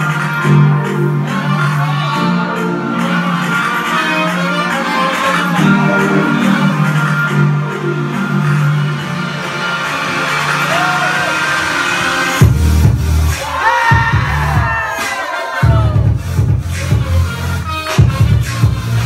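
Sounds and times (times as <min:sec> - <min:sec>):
melodic music passage: 0:00.0 - 0:10.6
bass-driven electronic beat: 0:12.2 - 0:19.0.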